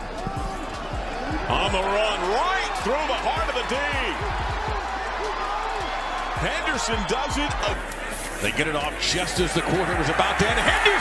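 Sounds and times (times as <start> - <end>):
stadium crowd noise: 0.0 - 11.0
commentator talking: 8.4 - 11.0.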